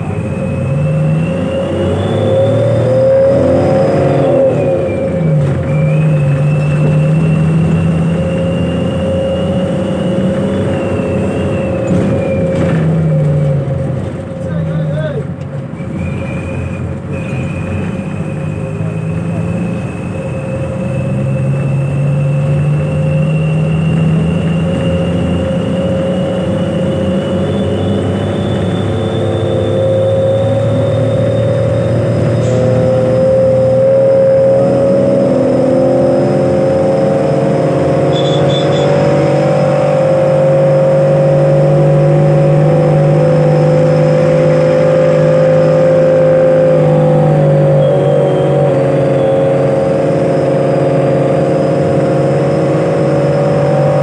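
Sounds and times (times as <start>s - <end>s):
bus engine running under load: 0.0s - 54.0s
high whine: 17.2s - 54.0s.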